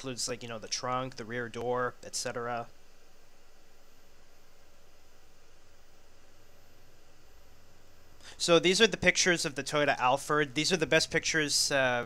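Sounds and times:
faint steady hiss: 0:00.0 - 0:12.0
low hum: 0:00.0 - 0:12.0.

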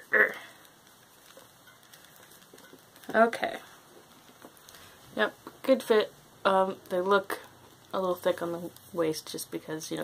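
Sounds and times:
soft rustles of handling: 0:00.5 - 0:10.0.

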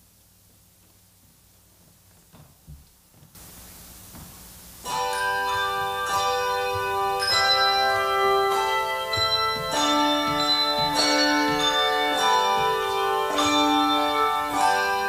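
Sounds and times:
handbell choir playing chords: 0:04.9 - 0:15.0.

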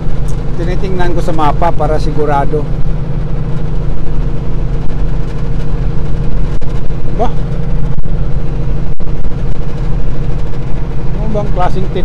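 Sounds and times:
diesel truck engine droning: 0:00.0 - 0:12.0.

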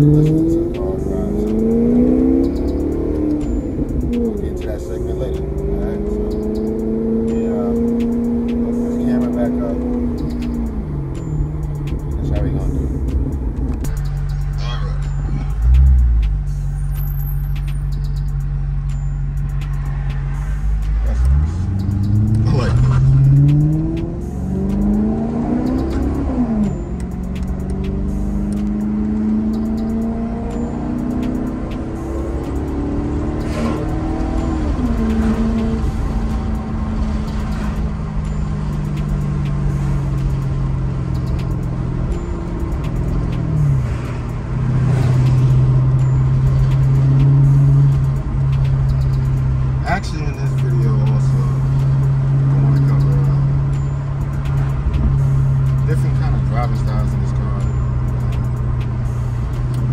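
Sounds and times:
car engine accelerating: 0:00.0 - 0:59.9.

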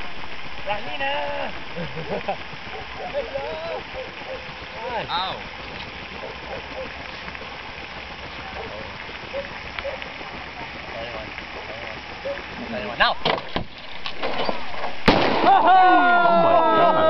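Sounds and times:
steady outdoor hiss: 0:00.0 - 0:17.0
person laughing: 0:01.7 - 0:02.6
faint voices: 0:02.9 - 0:13.1.

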